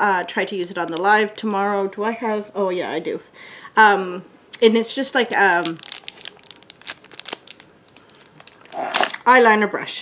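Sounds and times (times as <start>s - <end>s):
plastic packaging crinkling: 5.0s - 9.2s.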